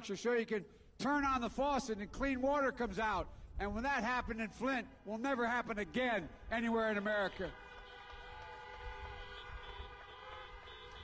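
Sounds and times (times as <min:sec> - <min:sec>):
car horns honking: 0:07.4 - 0:11.0.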